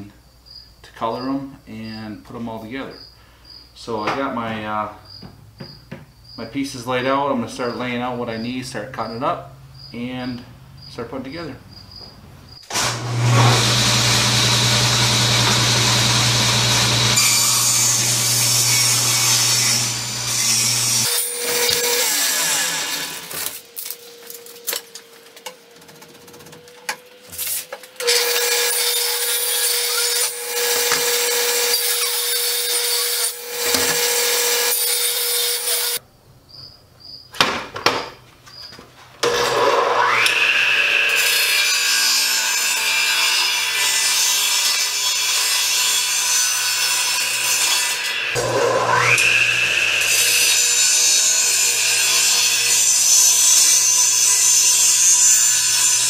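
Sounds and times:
saw whining into boards: 0:12.6 - 0:36.0, 0:39.2 - 0:56.0
saw blade rasping through wood: 0:12.7 - 0:23.6, 0:27.4 - 0:36.0, 0:39.3 - 0:56.0
saw motor spinning up: 0:12.7 - 0:23.7, 0:48.1 - 0:54.3
table saw humming: 0:12.7 - 0:25.4, 0:26.6 - 0:36.0, 0:39.2 - 0:56.0.

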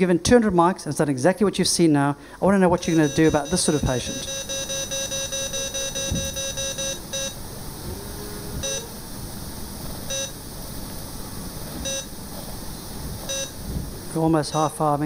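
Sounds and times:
patient monitor beeping: 0:02.8 - 0:07.5, 0:08.6 - 0:09.0, 0:10.1 - 0:10.4, 0:11.8 - 0:12.2, 0:13.2 - 0:13.6, 0:14.3 - 0:15.0.

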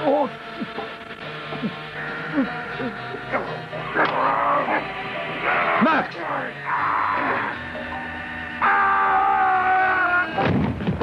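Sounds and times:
dramatic music chord: 0:00.0 - 0:08.9.

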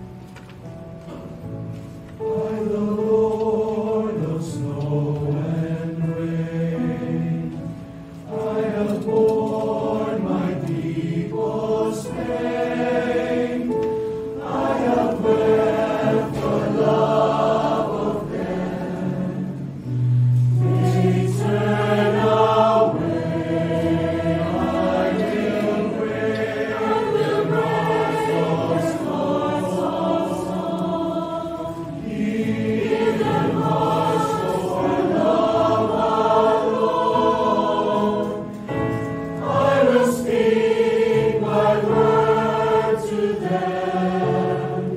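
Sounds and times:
mixed choir singing: 0:02.2 - 0:44.9.

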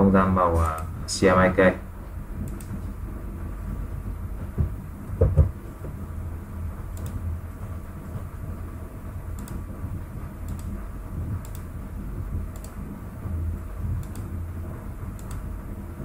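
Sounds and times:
low electrical hum: 0:00.0 - 0:16.0
short low thump: 0:04.5 - 0:06.0.

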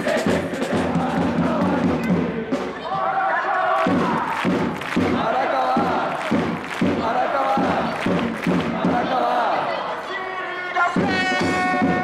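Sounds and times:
drum beating: 0:00.0 - 0:02.9, 0:03.8 - 0:09.8, 0:10.8 - 0:12.0
crowd chanting in unison: 0:00.0 - 0:12.0.

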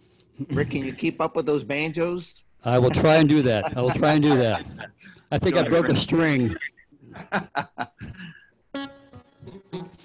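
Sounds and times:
man chuckling: 0:03.5 - 0:08.5.

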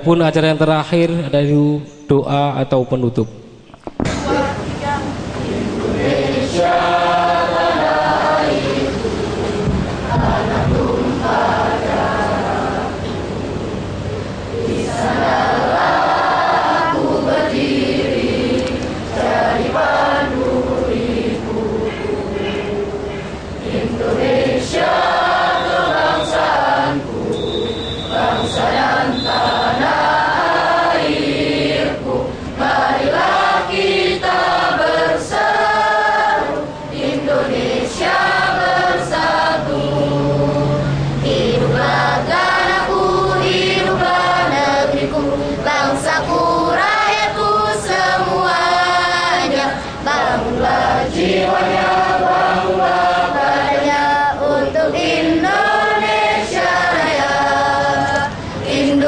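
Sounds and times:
crowd singing in unison: 0:03.8 - 0:59.0.

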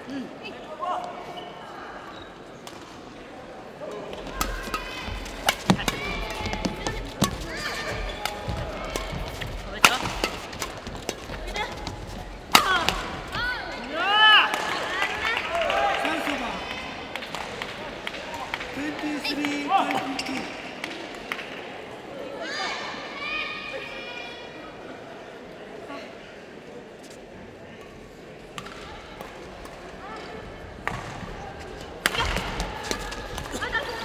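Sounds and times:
voices in a hall: 0:00.0 - 0:34.0
court shoes squeaking: 0:01.2 - 0:02.9, 0:04.2 - 0:13.8
rackets striking shuttlecock: 0:04.3 - 0:11.8, 0:12.4 - 0:13.1.

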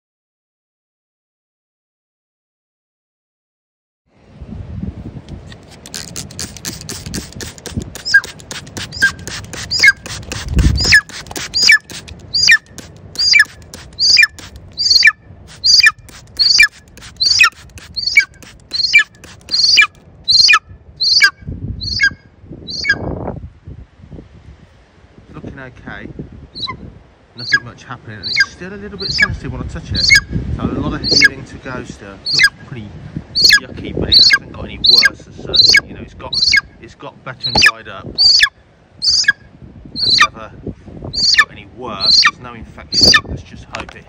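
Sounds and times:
rustling and handling noise: 0:05.3 - 0:14.8, 0:15.5 - 0:20.0
bird of prey calling: 0:05.9 - 0:23.1, 0:26.5 - 0:26.8, 0:27.4 - 0:29.4, 0:30.0 - 0:30.3, 0:31.0 - 0:31.4, 0:32.2 - 0:32.6, 0:33.3 - 0:36.8, 0:37.4 - 0:40.3, 0:41.1 - 0:43.3.

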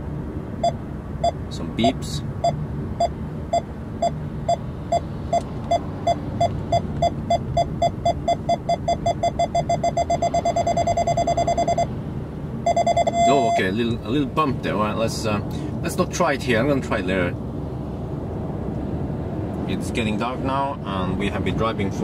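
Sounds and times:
low road rumble: 0:00.0 - 0:22.0
car warning beeps: 0:00.6 - 0:12.0, 0:12.6 - 0:13.8.

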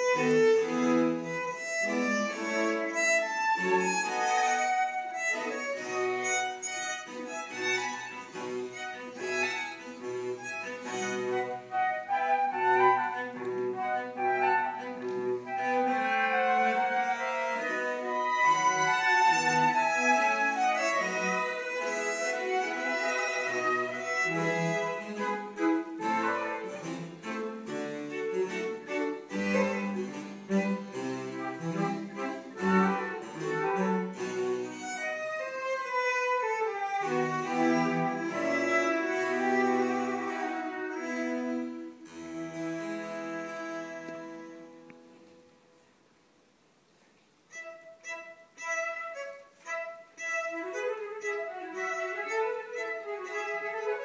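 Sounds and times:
baroque chamber ensemble playing: 0:00.0 - 0:46.0, 0:47.2 - 0:54.0.

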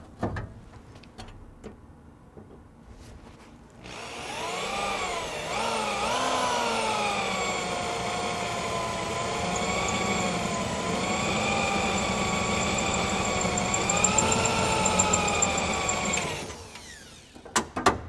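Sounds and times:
power drill boring into metal: 0:03.8 - 0:17.4.

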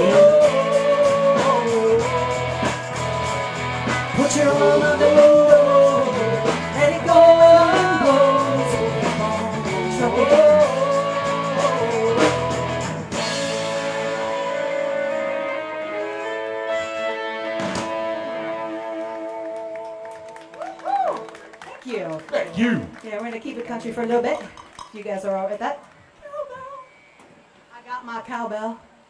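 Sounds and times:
woman singing: 0:00.0 - 0:02.6, 0:04.2 - 0:12.7
country-rock band playing: 0:00.0 - 0:20.5.

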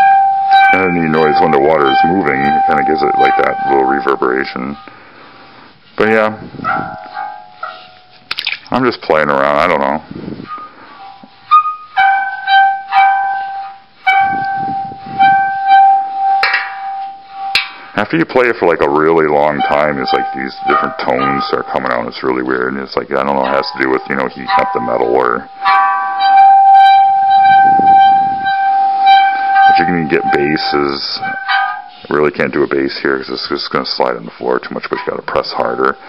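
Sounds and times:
hands rasping on metal: 0:00.0 - 0:04.9, 0:09.6 - 0:17.9, 0:18.8 - 0:22.6, 0:23.2 - 0:33.1
water gong ringing tone: 0:00.0 - 0:04.9, 0:10.5 - 0:17.8, 0:18.9 - 0:22.0, 0:23.4 - 0:32.0.

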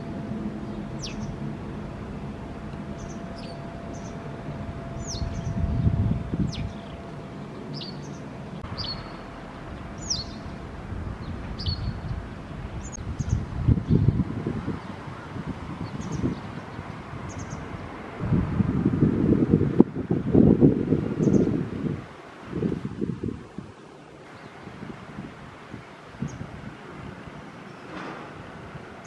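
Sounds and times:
wagtail calls: 0:00.0 - 0:14.1
wind buffeting microphone: 0:00.0 - 0:29.0
faint high bird chirps: 0:04.9 - 0:09.4, 0:10.0 - 0:10.5.

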